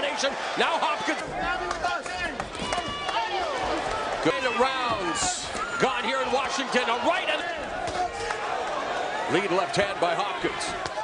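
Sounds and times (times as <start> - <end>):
man commentating: 0.0 - 2.4, 4.2 - 8.2, 9.3 - 10.8.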